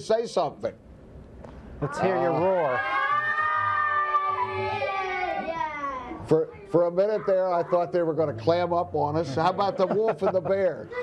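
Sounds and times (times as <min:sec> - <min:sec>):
children roaring together: 0:01.9 - 0:09.5.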